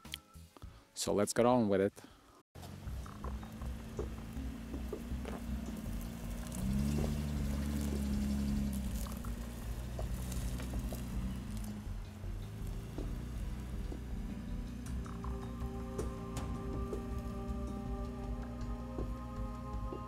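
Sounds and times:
ticks and crunches: 0:02.6 - 0:11.8
engine pulling under load: 0:02.6 - 0:20.0.

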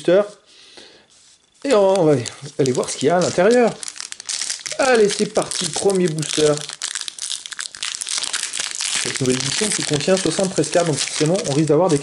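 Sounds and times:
foil wrapper crinkling: 0:01.5 - 0:12.0.

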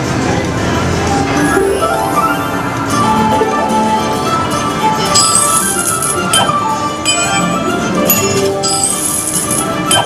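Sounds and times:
slot machine bonus music: 0:01.2 - 0:10.0
bright chiming and clinking: 0:05.1 - 0:07.5.

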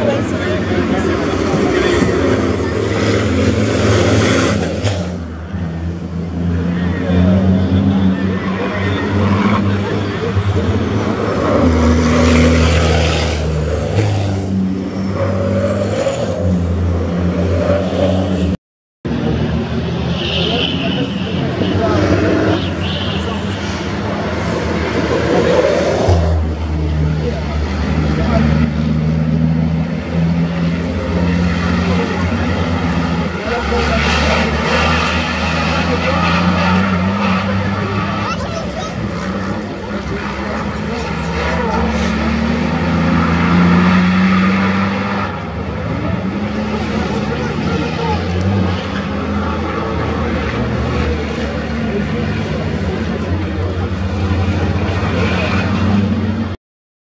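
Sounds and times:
truck diesel engines droning: 0:00.0 - 0:56.6.

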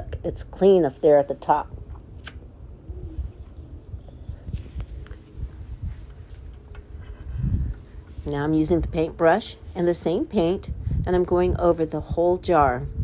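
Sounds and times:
sharp click: 0:02.2 - 0:02.4.

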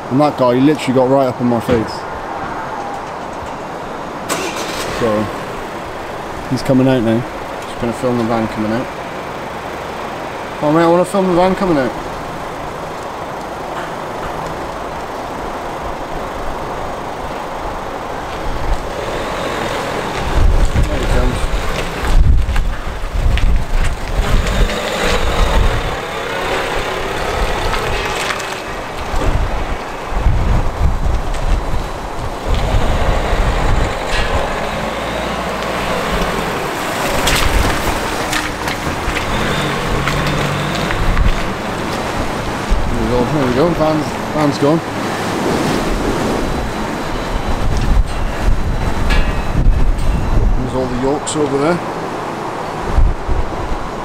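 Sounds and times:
van engine driving off: 0:03.6 - 0:53.9
wind buffeting microphone: 0:11.4 - 0:54.0.

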